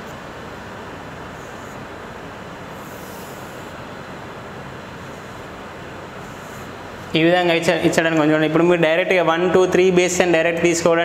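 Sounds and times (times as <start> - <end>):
steady background noise: 0.0 - 11.0
chalk scraping on blackboard: 2.8 - 3.7.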